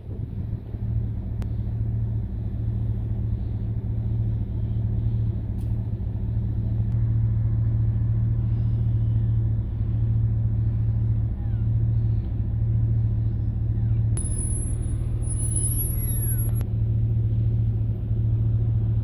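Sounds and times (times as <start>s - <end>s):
loud low hum: 0.0s - 19.0s.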